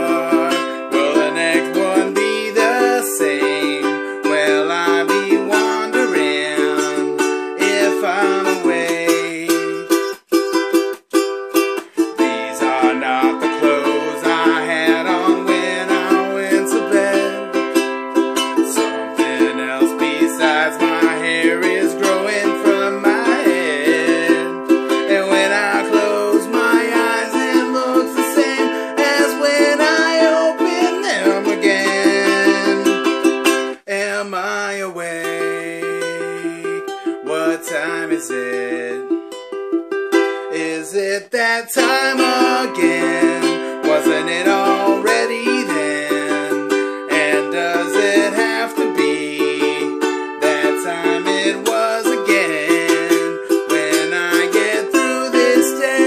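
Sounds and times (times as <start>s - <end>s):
ukulele strumming chords: 0.0s - 56.0s.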